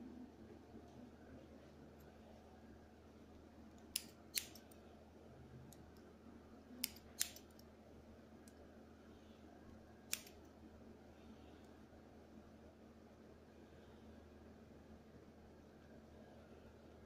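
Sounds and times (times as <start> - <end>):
scissors snipping hair: 3.8 - 4.8, 6.8 - 7.7, 10.1 - 10.5.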